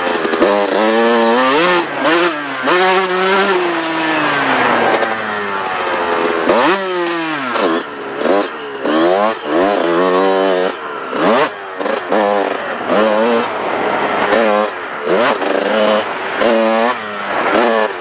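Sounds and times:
dirt bike engine revving: 0.0s - 18.0s.

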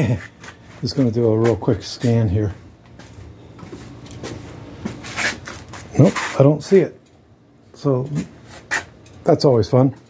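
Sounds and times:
footsteps on concrete: 2.8s - 6.2s.

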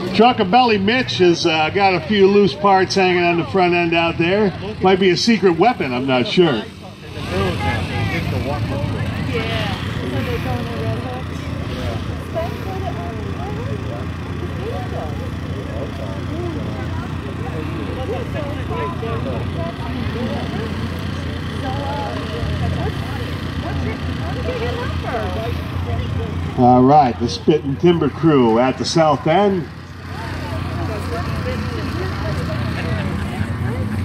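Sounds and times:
car engines running: 0.0s - 34.0s
spectators talking: 0.0s - 34.0s.

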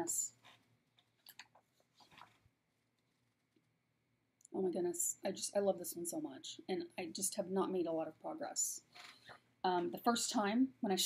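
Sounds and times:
paper booklet rustling: 0.4s - 2.5s.

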